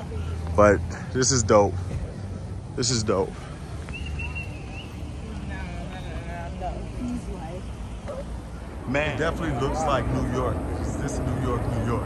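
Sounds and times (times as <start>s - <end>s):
faint voices talking: 0.0s - 12.0s
street traffic rumble: 0.0s - 12.0s.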